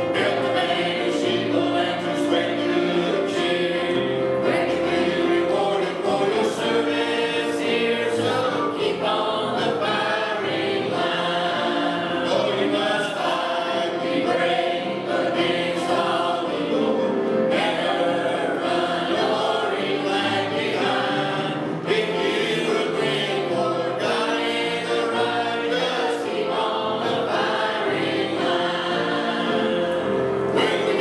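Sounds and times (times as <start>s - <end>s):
mixed choir singing a hymn: 0.0s - 31.0s.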